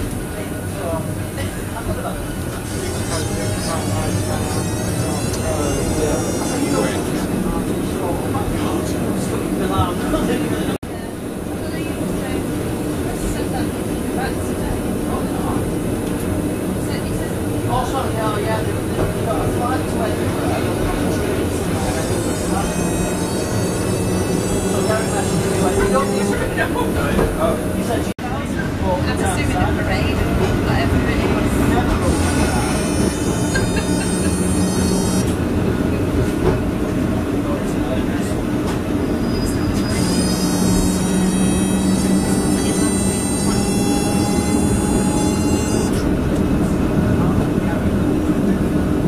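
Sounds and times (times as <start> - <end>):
tram rumbling on rails: 0.0 - 49.0
voices: 0.0 - 49.0
high thin whine: 2.7 - 7.4, 20.6 - 28.1, 31.7 - 35.4, 39.8 - 46.1
low motor hum: 18.7 - 28.1, 30.4 - 37.1, 39.8 - 47.8.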